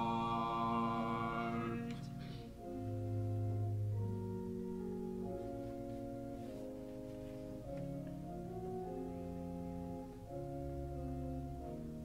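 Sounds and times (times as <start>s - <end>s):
church organ chords: 0.0s - 12.0s.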